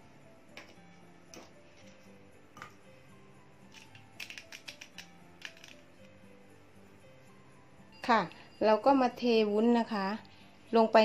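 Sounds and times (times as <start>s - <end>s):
faint background music: 0.0s - 11.0s
plastic moulds clicking on metal tray: 3.8s - 5.8s.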